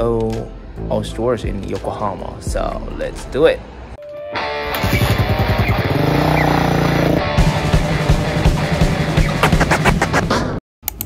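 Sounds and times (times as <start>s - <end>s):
background music: 0.0s - 10.4s
motorcycle engine running: 4.8s - 9.3s.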